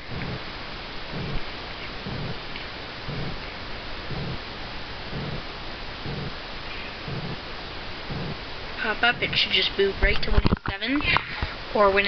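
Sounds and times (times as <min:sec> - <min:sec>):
soft low thumps: 0:00.0 - 0:10.9
background hiss: 0:00.0 - 0:12.0.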